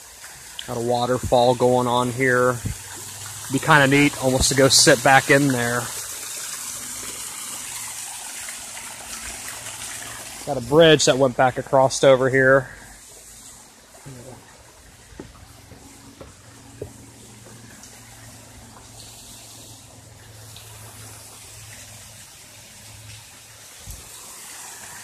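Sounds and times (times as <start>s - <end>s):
waterfall and stream hissing: 0.0s - 25.0s
faint knocks: 15.1s - 17.6s.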